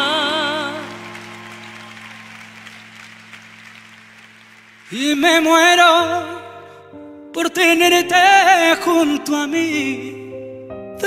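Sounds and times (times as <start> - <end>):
man singing: 0.0 - 1.4, 4.9 - 11.0
audience applause: 0.0 - 6.2.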